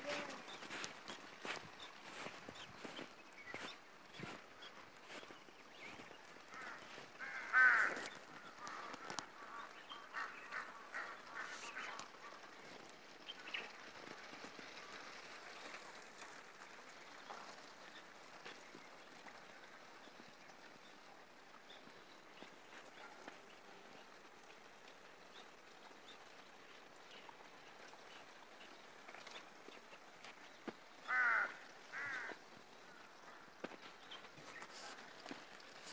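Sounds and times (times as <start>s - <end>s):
faint outdoor background: 0.0s - 35.9s.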